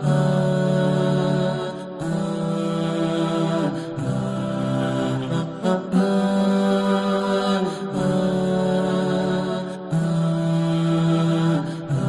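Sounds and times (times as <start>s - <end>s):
voices singing long held notes: 0.0s - 12.0s.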